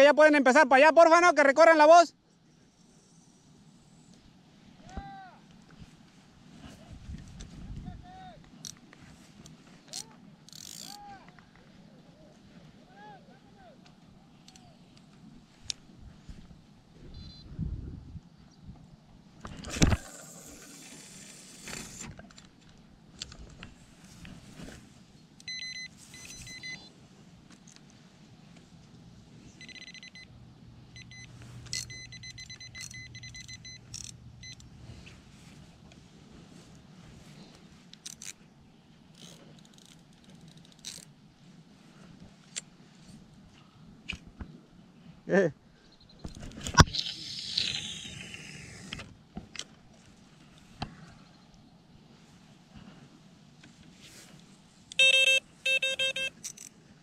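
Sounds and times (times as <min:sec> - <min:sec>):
fishing rod rattles and clicks: 0:08.6 - 0:11.0, 0:19.4 - 0:24.3, 0:27.5 - 0:28.0, 0:31.1 - 0:34.7, 0:37.9 - 0:38.5, 0:39.1 - 0:41.2, 0:55.8 - 0:56.8.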